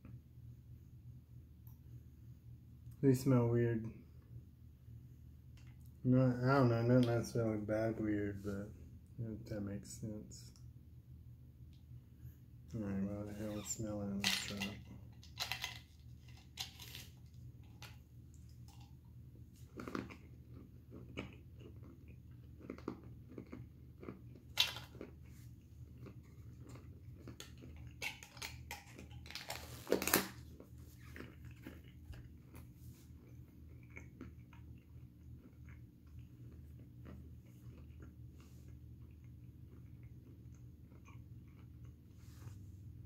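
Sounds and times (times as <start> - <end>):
low steady hum: 0.0 - 43.0
chewing and crunching peanuts: 14.1 - 43.0.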